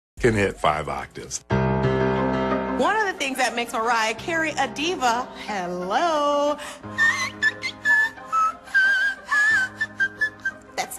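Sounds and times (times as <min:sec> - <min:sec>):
background music: 0:00.2 - 0:10.9.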